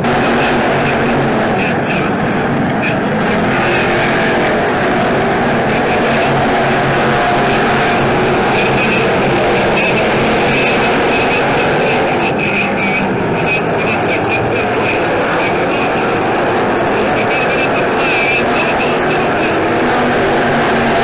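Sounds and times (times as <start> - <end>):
racing car engines droning: 0.0 - 21.0.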